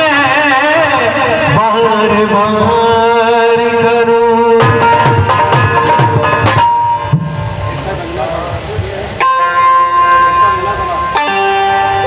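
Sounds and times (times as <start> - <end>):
hand drum strokes: 2.6 - 12.0
synthesizer chord held: 4.9 - 12.0.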